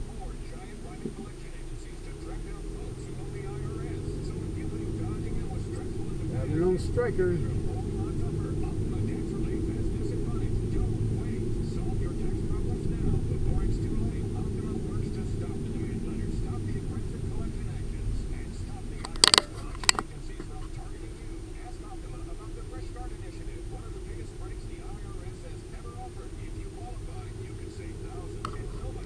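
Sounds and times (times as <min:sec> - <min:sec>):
car engine and tyre rumble: 0:00.0 - 0:29.0.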